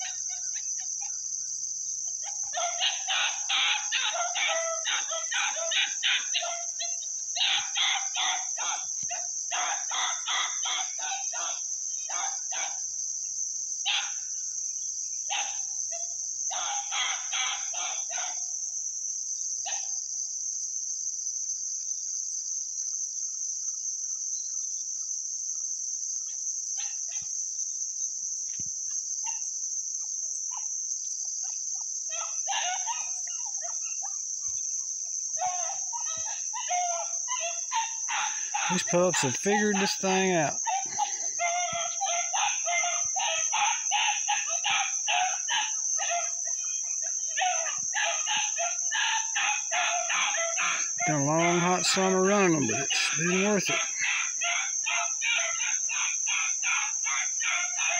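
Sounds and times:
high-pitched insect drone: 0.0 - 57.9
chicken calls: 35.4 - 45.4, 47.4 - 57.9.

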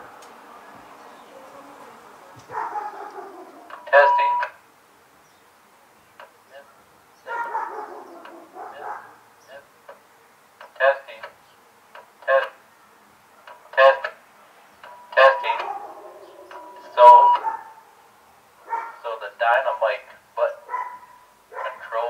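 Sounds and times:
man's voice over tinny speaker: 3.7 - 4.6, 8.6 - 9.7, 10.7 - 11.3, 12.2 - 12.6, 13.7 - 14.2, 15.1 - 15.8, 16.8 - 17.4, 19.0 - 20.6, 21.6 - 22.0
high ringing feedback tone: 16.5 - 17.4.

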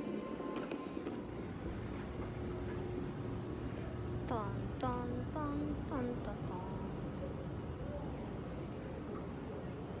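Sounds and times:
moving walkway rumble and hum: 0.0 - 10.0.

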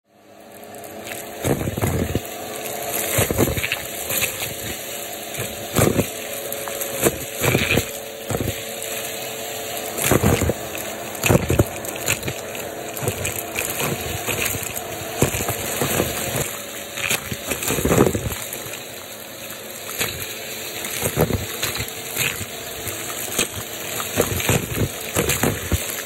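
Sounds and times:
vacuum cleaner humming: 0.2 - 26.0.

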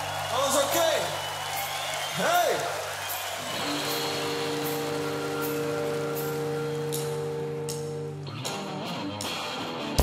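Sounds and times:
rock band playing: 2.9 - 10.0.

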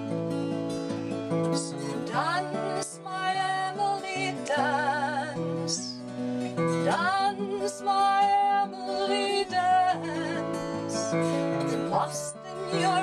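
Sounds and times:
acoustic guitar: 0.0 - 13.0
woman singing folk song: 0.3 - 13.0.

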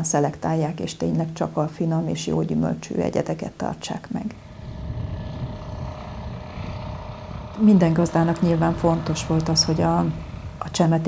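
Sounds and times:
tractor engine rumbling: 4.2 - 11.0.

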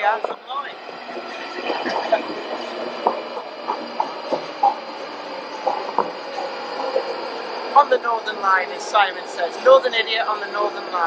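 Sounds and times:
electric train whine: 0.0 - 11.0
train clicks and knocks: 0.0 - 11.0.

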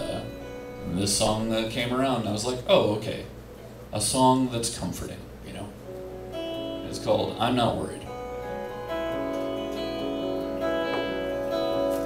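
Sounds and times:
clean electric guitar chords: 0.0 - 2.7, 5.7 - 12.0.

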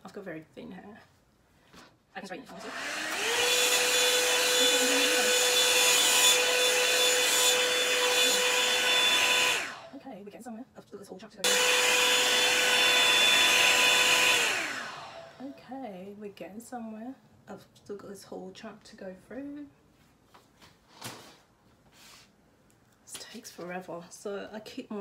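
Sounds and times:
hot-air brush dryer whining: 2.5 - 10.0, 11.4 - 15.6.

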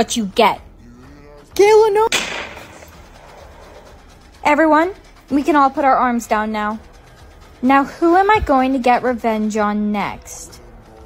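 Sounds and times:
sudden bang: 2.1 - 3.0.

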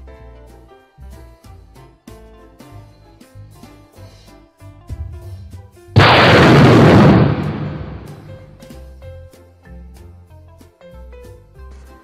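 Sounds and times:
light background music: 0.0 - 6.0, 8.4 - 12.0
thunderclap: 5.0 - 8.6.

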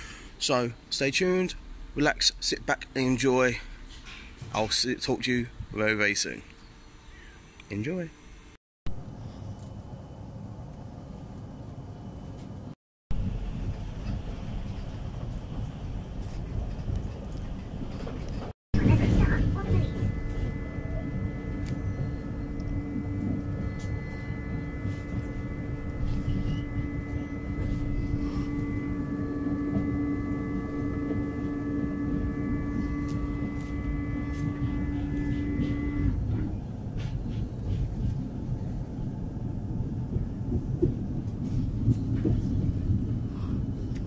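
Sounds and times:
electric hum: 4.7 - 44.0
train running from inside carriage: 11.7 - 44.0.

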